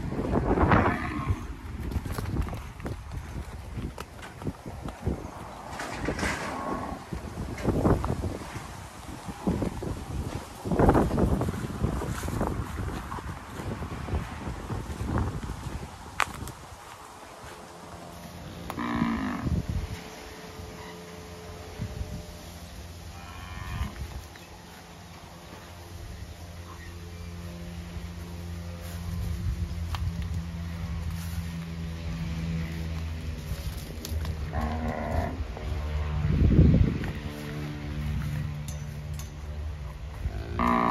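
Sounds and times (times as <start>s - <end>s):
wind buffeting microphone: 0.0s - 17.0s, 19.0s - 20.2s, 33.3s - 38.6s
cow mooing: 18.7s - 19.5s, 34.5s - 35.4s, 40.3s - 40.9s.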